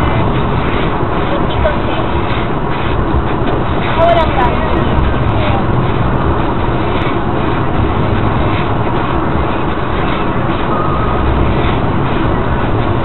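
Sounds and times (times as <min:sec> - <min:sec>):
car road and tyre noise: 0:00.0 - 0:13.0.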